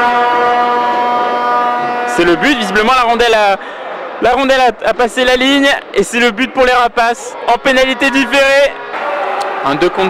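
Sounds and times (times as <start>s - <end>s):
goal horn blast: 0.0s - 3.4s.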